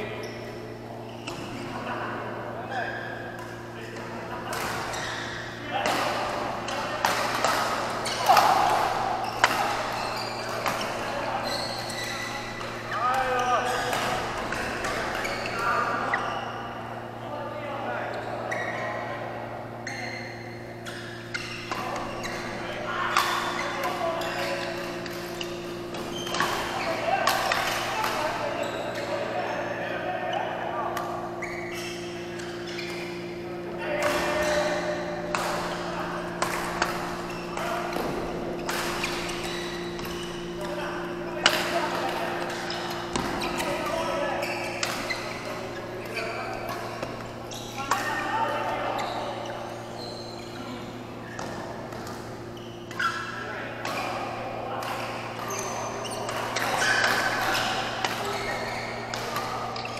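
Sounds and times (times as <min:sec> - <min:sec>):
steady low hum: 0:19.1 - 0:59.9.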